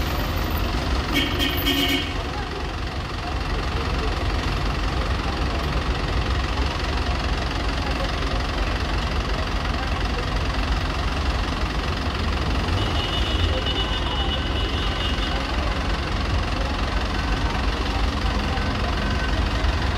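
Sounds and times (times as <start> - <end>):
bus engine idling: 0.0 - 19.9
street traffic: 0.0 - 19.9.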